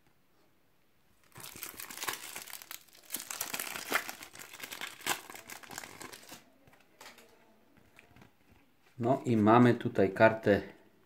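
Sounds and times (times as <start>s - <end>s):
foil wrapper crinkling: 1.2s - 6.4s.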